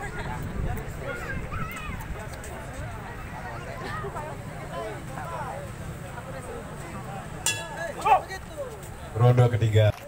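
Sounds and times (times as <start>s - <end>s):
chatter of spectators: 0.0s - 10.0s
boxing ring bell clang: 7.5s - 7.8s.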